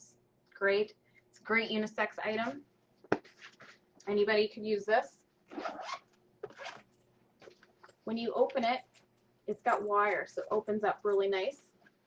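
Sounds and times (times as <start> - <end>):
backpack fabric rustle: 5.5 - 7.7.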